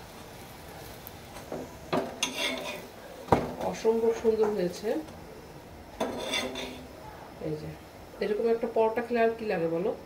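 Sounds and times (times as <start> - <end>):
metal spatula scraping griddle: 2.1 - 2.9, 6.0 - 6.9.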